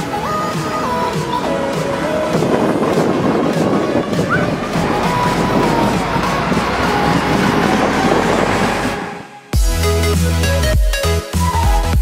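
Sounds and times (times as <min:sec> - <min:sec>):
street traffic passing: 0:00.0 - 0:09.6.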